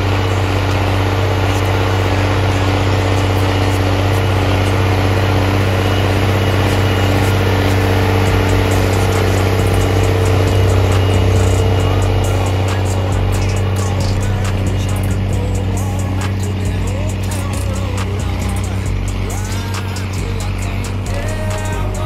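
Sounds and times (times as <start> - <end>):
tractor diesel engine under load: 0.0 - 22.0.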